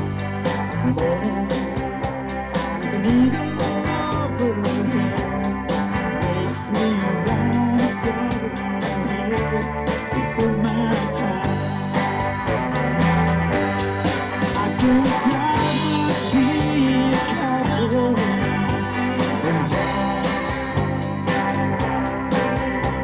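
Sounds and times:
drum kit beat: 0:00.0 - 0:23.0
live country-rock band: 0:00.0 - 0:23.0.

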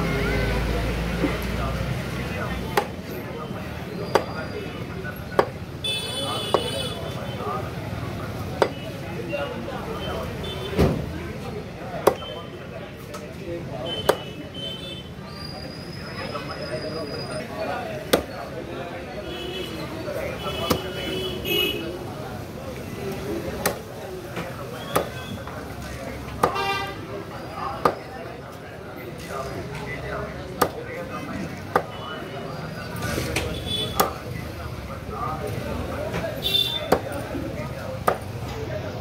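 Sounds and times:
cleaver chopping into wooden block: 0:02.7 - 0:03.0, 0:05.4 - 0:05.6, 0:12.0 - 0:12.3, 0:14.0 - 0:14.3, 0:18.1 - 0:18.4, 0:23.6 - 0:23.9, 0:24.9 - 0:25.2, 0:26.3 - 0:26.6, 0:27.8 - 0:28.0, 0:30.6 - 0:30.8, 0:33.9 - 0:34.2, 0:36.8 - 0:37.2, 0:38.0 - 0:38.3
vehicle horn toot: 0:05.8 - 0:07.0.

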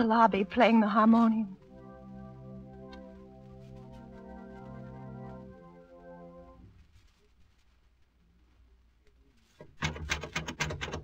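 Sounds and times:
door rattling: 0:09.6 - 0:11.0.

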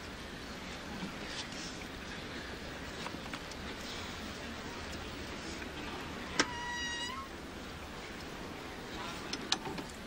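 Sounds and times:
short high squeak: 0:06.3 - 0:07.3.

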